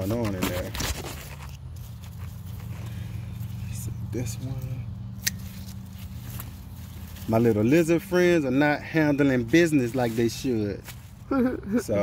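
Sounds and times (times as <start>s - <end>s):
plant foliage rustling: 0.0s - 12.0s
leaves snapping off: 4.5s - 6.6s.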